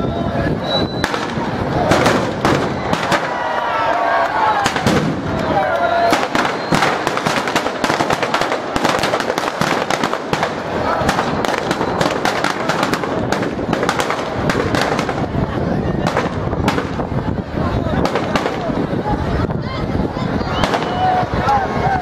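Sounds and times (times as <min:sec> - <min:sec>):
firecrackers crackling: 0:00.3 - 0:22.0.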